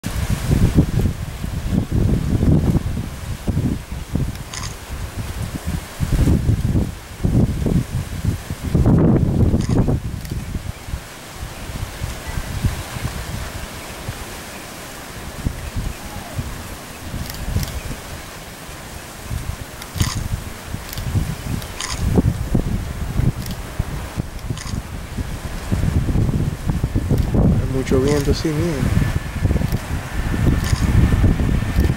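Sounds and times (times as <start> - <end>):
wind buffeting microphone: 0.0 - 31.9.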